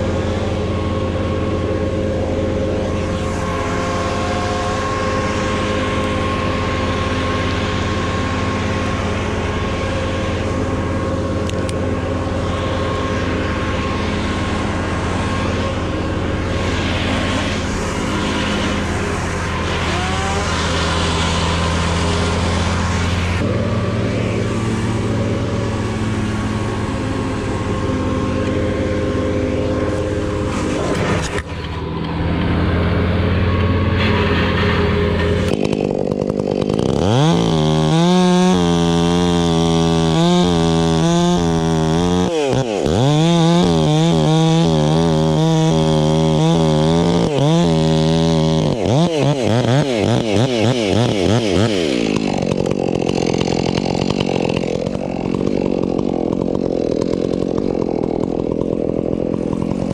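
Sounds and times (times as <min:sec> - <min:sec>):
chainsaw revving: 0:00.0 - 0:59.9
low engine drone: 0:00.0 - 0:59.9.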